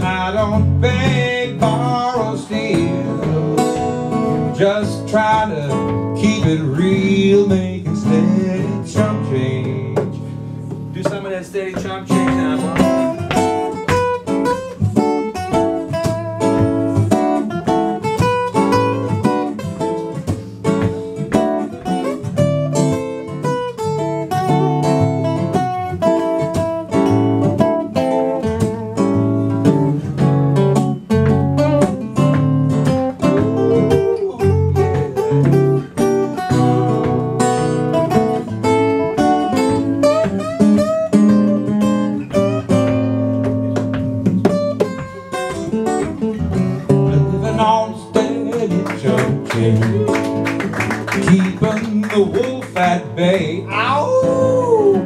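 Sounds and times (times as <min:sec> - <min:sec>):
acoustic guitars playing blues: 0:00.0 - 0:55.0.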